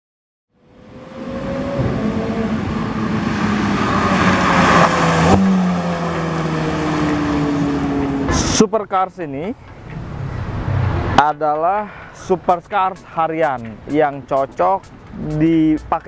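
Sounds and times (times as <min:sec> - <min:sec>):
sports car engine at speed: 0:00.6 - 0:08.8.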